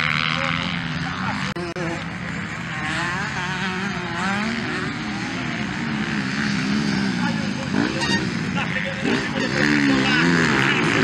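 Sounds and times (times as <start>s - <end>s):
dirt bike engines revving: 0.0s - 11.0s.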